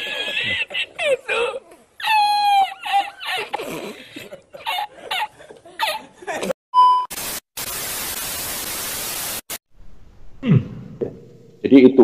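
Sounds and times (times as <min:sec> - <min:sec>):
tv static hiss: 0:07.1 - 0:09.6.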